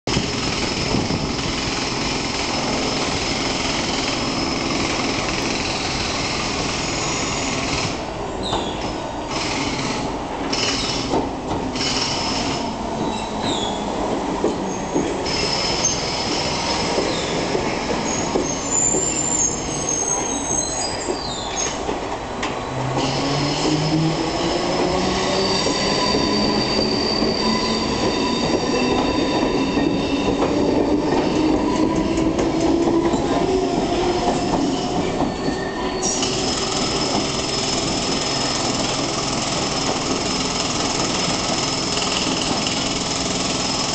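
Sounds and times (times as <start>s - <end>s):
train wheels rumbling on rail: 0.1s - 43.9s
high-pitched wheel squeal: 23.1s - 32.1s.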